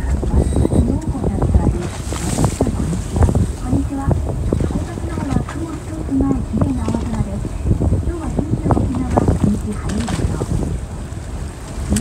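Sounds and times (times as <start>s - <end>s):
people talking: 0.0s - 10.6s
sea noise: 0.0s - 12.0s
wind buffeting the microphone: 0.0s - 12.0s.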